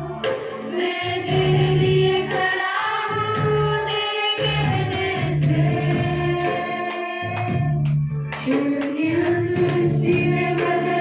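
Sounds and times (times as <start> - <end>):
women singing a hymn: 0.0 - 7.8, 8.4 - 11.0.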